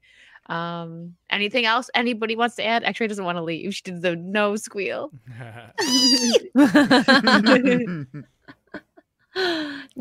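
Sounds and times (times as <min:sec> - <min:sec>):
people laughing: 0:05.3 - 0:08.9
pet squealing: 0:05.8 - 0:06.6.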